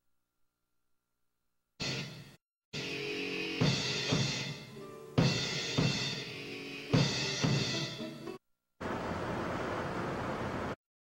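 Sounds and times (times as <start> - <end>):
kick and snare drum hits: 5.2 - 6.2, 7.0 - 7.8.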